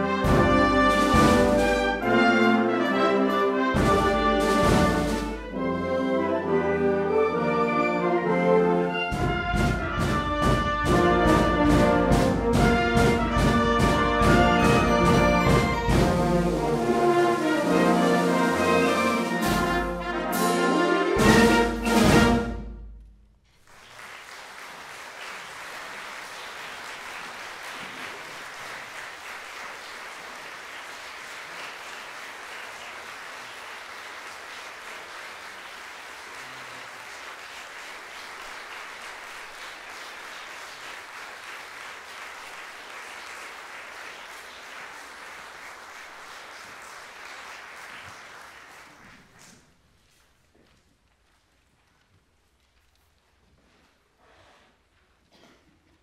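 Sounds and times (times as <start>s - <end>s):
large audience applauding: 9.9s - 20.0s, 23.5s - 49.8s.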